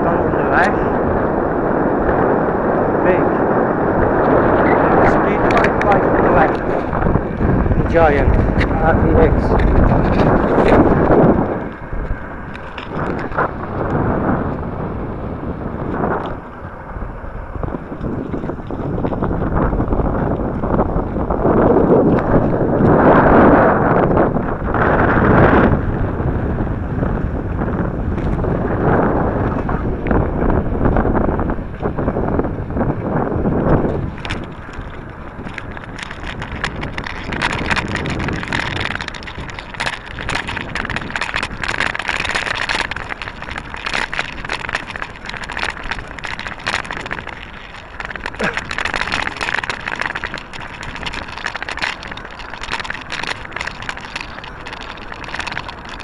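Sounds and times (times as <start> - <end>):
wind buffeting microphone: 0.0 - 56.0
small rattling clicks: 33.6 - 56.0.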